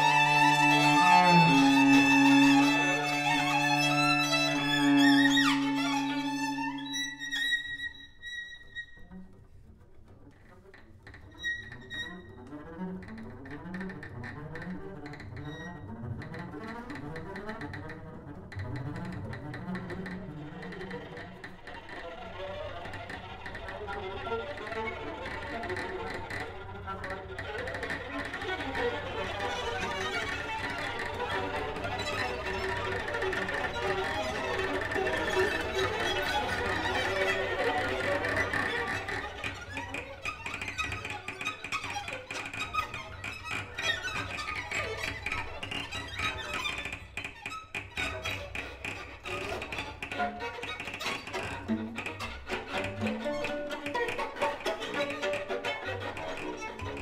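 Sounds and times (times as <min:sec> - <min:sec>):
string quartet playing improvised music: 0:00.0 - 0:57.0.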